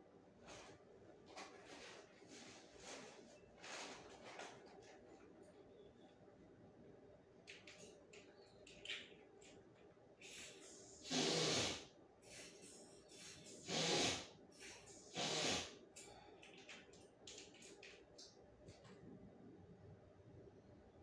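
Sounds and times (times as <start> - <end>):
person sniffing through stuffy nose: 10.2 - 15.7.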